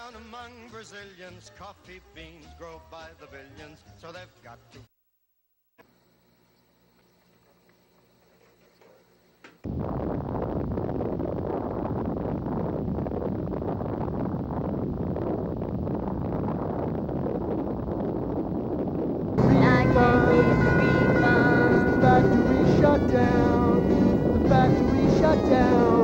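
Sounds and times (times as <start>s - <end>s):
explosion with rumbling roar: 9.7s - 26.0s
song with singing: 19.4s - 26.0s.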